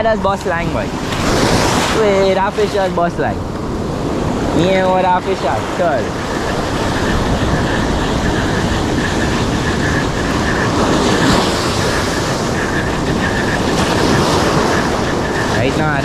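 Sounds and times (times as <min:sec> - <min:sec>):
sea surf breaking on beach: 0:00.0 - 0:16.0.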